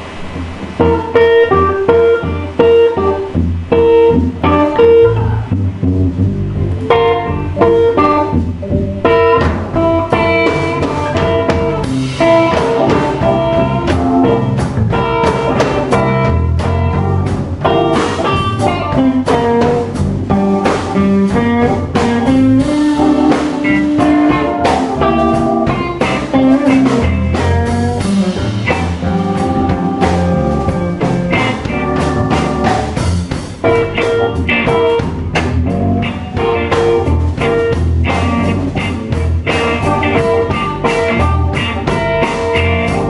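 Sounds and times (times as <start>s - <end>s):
bass guitar: 0.0s - 43.0s
drum kit: 0.0s - 43.0s
electric guitar lines: 0.0s - 43.0s.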